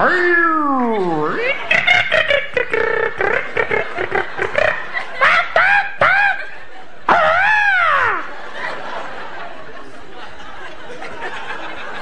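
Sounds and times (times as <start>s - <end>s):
man making odd vocal noises: 0.0s - 6.5s, 7.1s - 8.3s
audience laughter: 0.8s - 12.0s.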